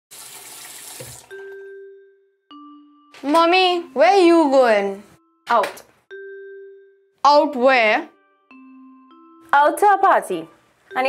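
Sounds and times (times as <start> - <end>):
tap water running over hands: 0.1 - 1.4
bell-like chime: 1.3 - 4.0.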